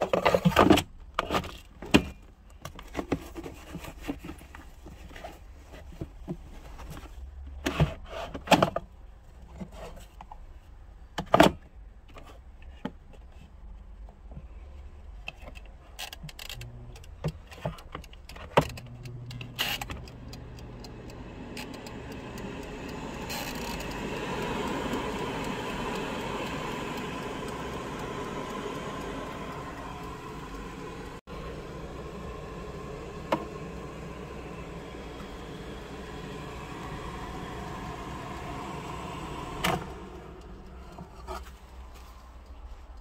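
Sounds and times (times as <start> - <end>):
air fryer fan whirring: 16.6 - 41.9.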